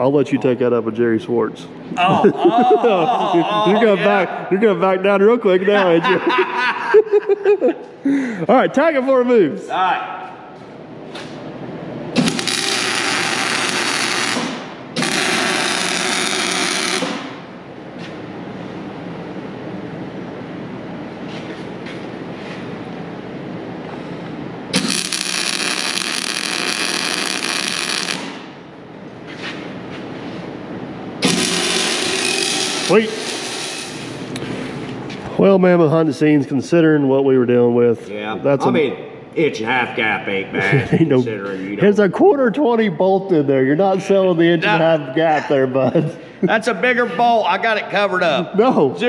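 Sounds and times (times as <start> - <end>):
steady shop noise: 0.0 - 49.0
arc welding crackling hiss: 12.2 - 17.3, 24.7 - 28.5, 31.2 - 34.2.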